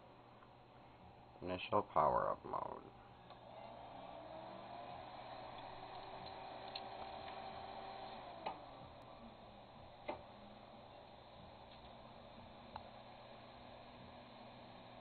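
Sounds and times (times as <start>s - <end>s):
hard disk motor whine: 2.9s - 15.0s
hard disk clicks: 5.4s - 8.8s, 10.0s - 10.4s.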